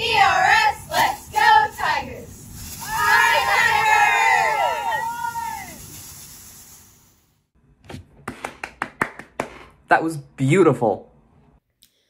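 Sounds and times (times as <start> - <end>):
girls chanting a cheer: 0.0 - 5.8.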